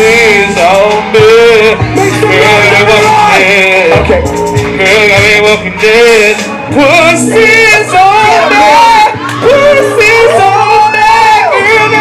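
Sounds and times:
hip-hop backing track: 0.0 - 12.0.

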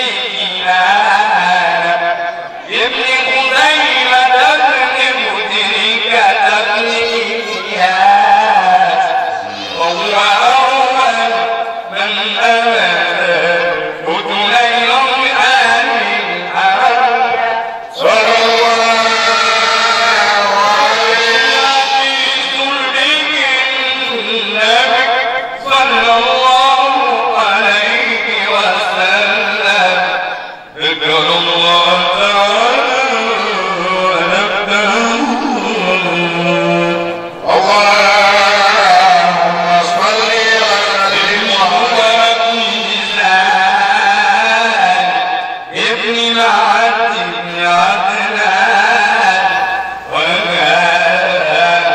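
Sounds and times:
young man chanting: 0.0 - 51.9.

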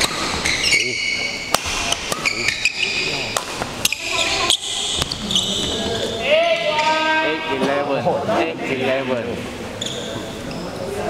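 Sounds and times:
players talking in a hall: 0.0 - 11.0
short high squeaks: 0.4 - 1.4, 9.8 - 10.2.

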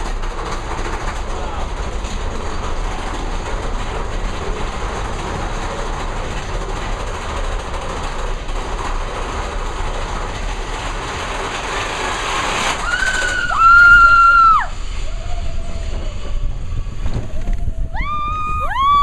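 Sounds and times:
roller coaster rattling rumble: 0.0 - 19.0.

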